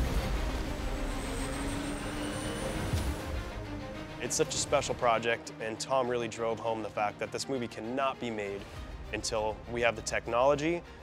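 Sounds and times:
jet engines roaring: 0.0 - 3.7
high engine whine: 0.0 - 4.2
background music: 0.0 - 11.0.

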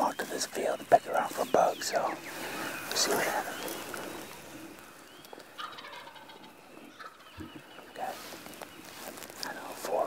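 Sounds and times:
faint turkey gobbling: 0.2 - 9.6.

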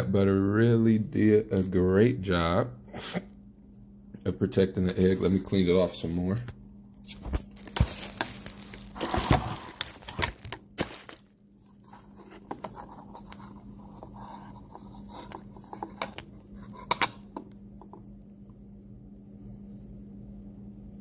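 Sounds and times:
faint steady hum: 0.0 - 21.0
hands scraping egg over bowl: 11.7 - 18.0.

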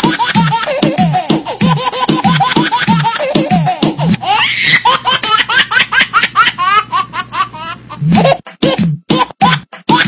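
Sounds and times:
high-pitched laughter: 0.0 - 10.0.

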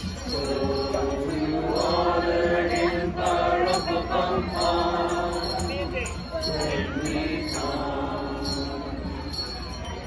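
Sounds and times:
choir singing: 0.0 - 9.5.

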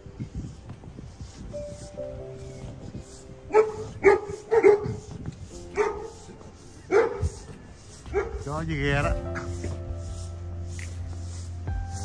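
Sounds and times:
dog barking: 3.5 - 6.2, 6.9 - 7.5, 8.1 - 8.4.

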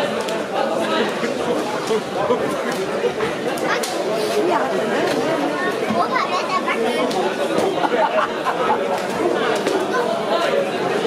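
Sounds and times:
crowd chatter in a large hall: 0.0 - 11.0.

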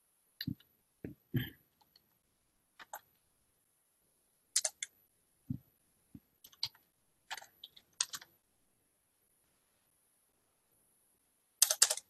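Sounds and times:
keyboard typing clicks: 4.6 - 5.0, 6.4 - 8.3, 11.6 - 12.0.

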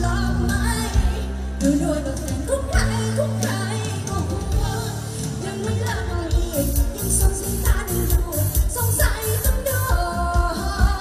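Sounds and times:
woman singing pop song: 0.0 - 11.0.

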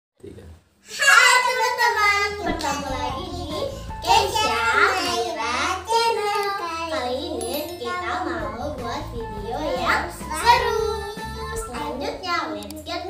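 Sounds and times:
girls talking animatedly: 0.9 - 13.0
background music: 2.1 - 13.0.

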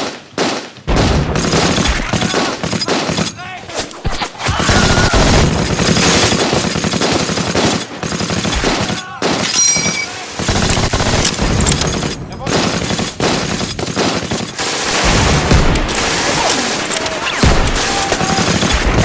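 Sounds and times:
rifle shots: 0.0 - 19.0
machine-gun bursts: 4.6 - 19.0.

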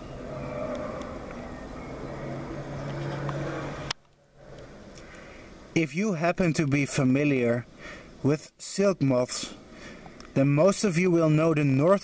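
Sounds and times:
low motor hum: 0.0 - 5.8
background noise: 0.0 - 12.0.

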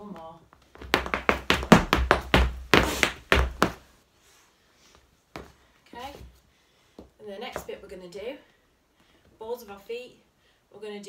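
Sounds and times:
hard shoes tapping on floor mat: 0.5 - 3.8.

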